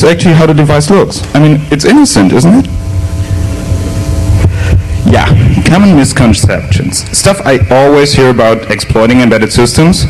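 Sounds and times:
faint steady tones: 0.0s - 10.0s
low room hum and rumble: 0.0s - 10.0s.

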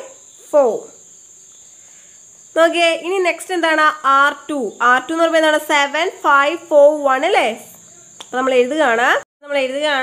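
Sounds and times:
high-pitched insects chirping: 0.0s - 10.0s.

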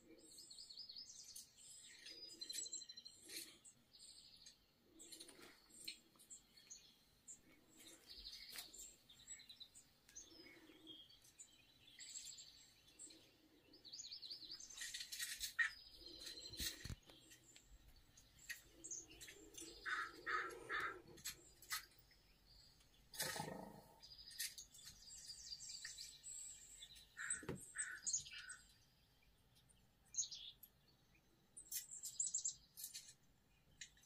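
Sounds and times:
songbirds chirping through speakers: 0.0s - 34.0s.

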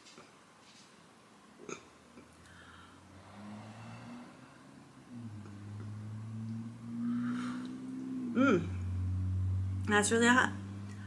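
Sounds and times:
person humming mmm: 2.6s - 9.9s.

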